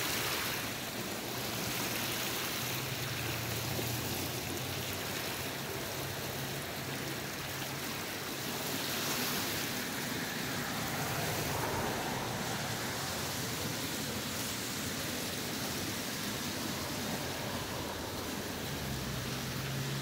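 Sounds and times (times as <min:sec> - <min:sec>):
river floodwater rushing: 0:00.0 - 0:20.0.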